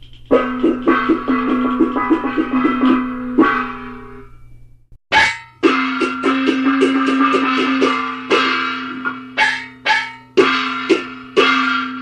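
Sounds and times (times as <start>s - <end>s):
plucked strings and percussion music: 0.0s - 12.0s.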